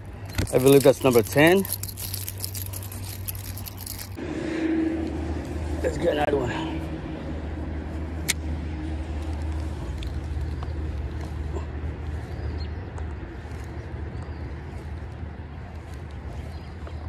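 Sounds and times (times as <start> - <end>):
steady low rumble: 0.0 - 17.0
fishing reel ticking: 0.2 - 4.2.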